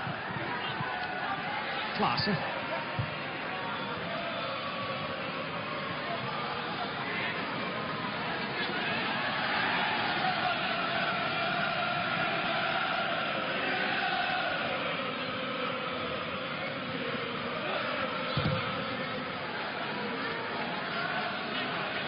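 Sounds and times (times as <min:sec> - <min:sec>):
crowd chanting: 0:00.0 - 0:22.0
stadium crowd noise: 0:00.0 - 0:22.0.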